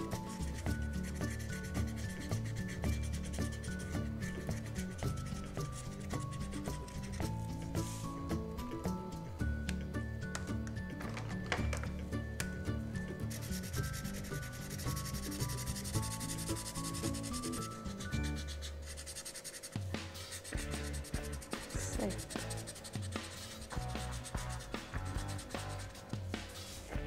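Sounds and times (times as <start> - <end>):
crayon scribbling on cardboard: 0.0 - 8.0, 13.3 - 26.9.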